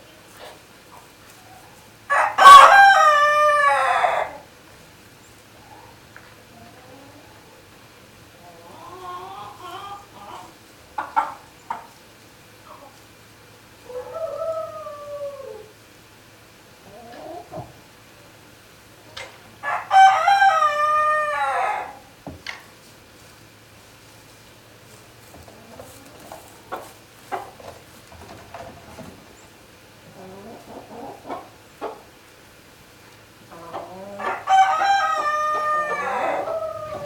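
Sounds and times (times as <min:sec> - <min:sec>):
chickens clucking: 0:00.0 - 0:37.0
rooster crowing: 0:02.1 - 0:04.5, 0:13.8 - 0:15.8, 0:19.6 - 0:22.1, 0:34.1 - 0:37.0.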